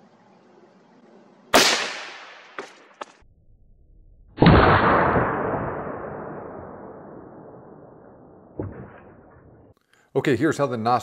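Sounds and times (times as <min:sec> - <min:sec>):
suppressed rifle shot: 0:01.5 - 0:03.0, 0:04.4 - 0:09.7.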